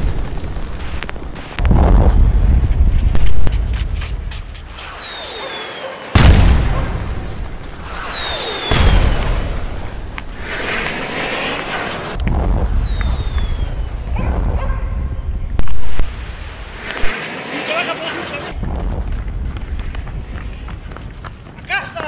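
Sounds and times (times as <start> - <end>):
loud distorted burst: 4.8 - 17.4
wind rumble on microphone: 12.1 - 16.8, 18.6 - 21.5.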